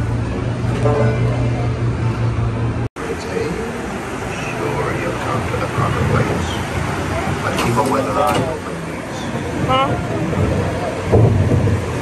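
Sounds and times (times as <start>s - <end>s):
deep rumble: 0.0s - 12.0s
rushing water: 3.0s - 12.0s.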